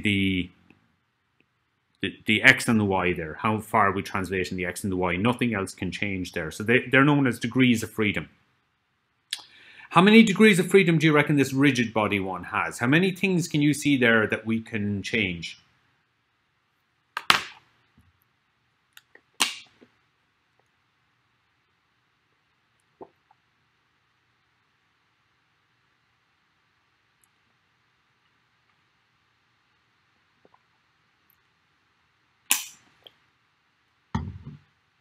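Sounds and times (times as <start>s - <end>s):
sharp click: 32.5s - 32.9s.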